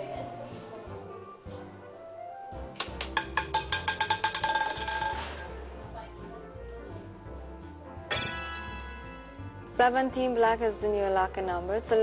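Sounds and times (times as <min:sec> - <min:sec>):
roulette ball clicking and rattling: 0:02.7 - 0:05.5.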